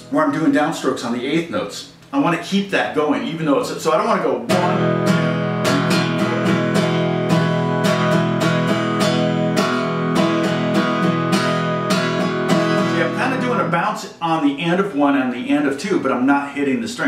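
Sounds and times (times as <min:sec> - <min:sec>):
acoustic guitar strumming: 0:04.5 - 0:14.0.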